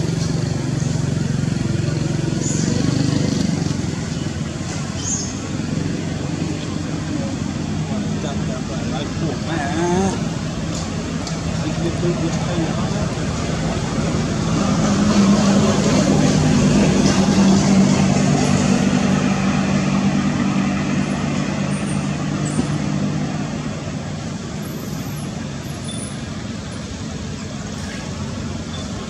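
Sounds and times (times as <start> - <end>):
passing vehicle engine hum: 0.0 - 29.0.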